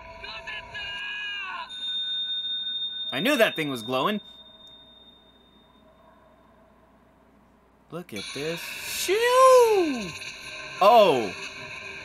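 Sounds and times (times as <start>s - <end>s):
steady high ringing tone: 1.1s - 7.4s, 8.2s - 12.0s.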